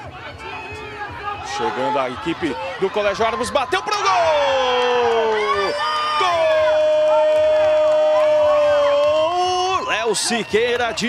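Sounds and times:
spectators cheering and shouting: 0.0 - 11.0.

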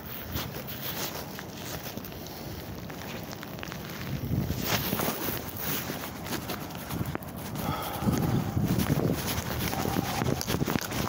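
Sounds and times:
sandal footsteps on pavement: 0.0 - 11.0.

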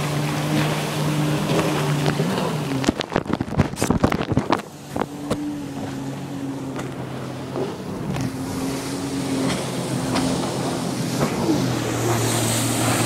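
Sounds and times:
muffled watercraft engine hum: 0.0 - 13.0
wind and water hiss: 0.0 - 13.0.

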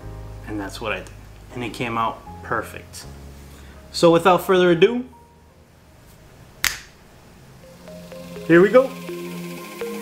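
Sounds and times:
soft music: 0.0 - 6.5, 7.2 - 10.0
finger snap: 6.6 - 7.0.

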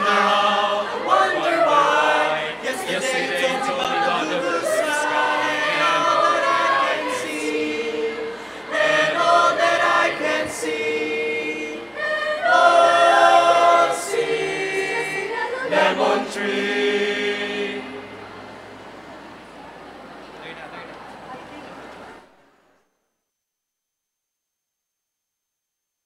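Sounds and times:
mixed choir singing a cappella: 0.0 - 18.8.

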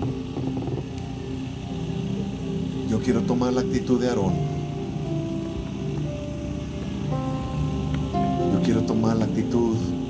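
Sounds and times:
slow worship music on keyboard: 0.0 - 10.0.

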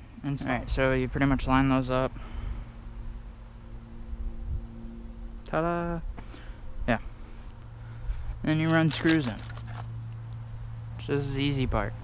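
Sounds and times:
insects chirping: 0.0 - 12.0.

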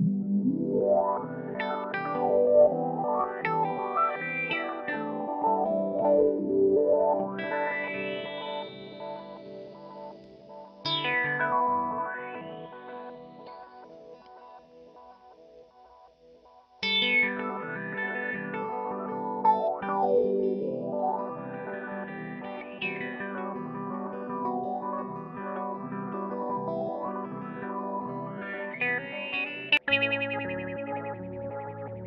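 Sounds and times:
electric guitar with envelope filter: 0.0 - 32.0.

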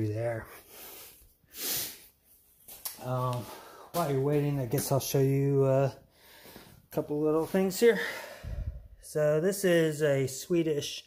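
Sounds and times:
puff of breath: 8.0 - 9.0.

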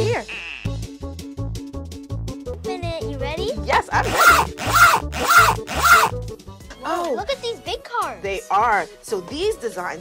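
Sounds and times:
zipper pulled open: 4.0 - 6.1.

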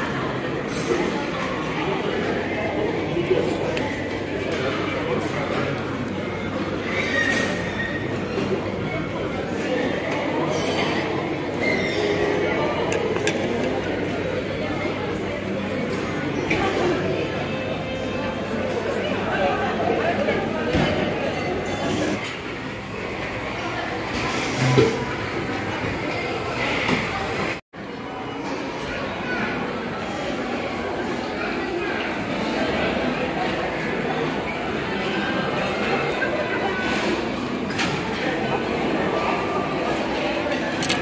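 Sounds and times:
crowd chatter: 0.0 - 41.0
restaurant background din: 0.0 - 41.0.

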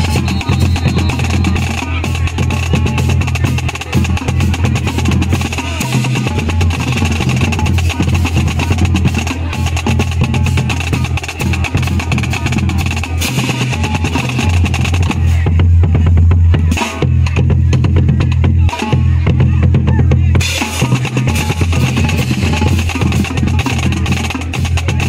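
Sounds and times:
snare drum rolls: 0.0 - 15.4
tenor and bass drums: 0.0 - 25.0.

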